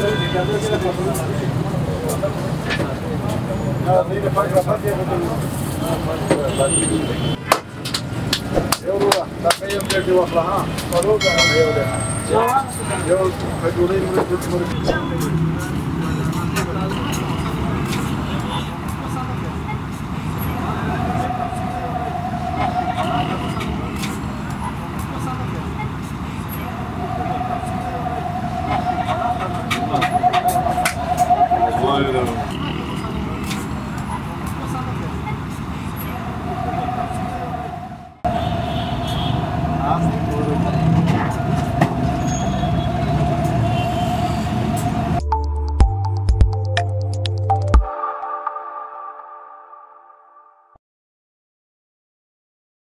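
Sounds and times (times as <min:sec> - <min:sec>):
rumble of vehicle engines: 0:00.0 - 0:45.2
traffic: 0:00.0 - 0:45.4
indistinct voices: 0:08.4 - 0:45.3
warbling high tone: 0:11.2 - 0:12.8, 0:20.6 - 0:23.9, 0:26.6 - 0:33.2, 0:47.6 - 0:50.8
continuous whining tone: 0:18.9 - 0:45.2.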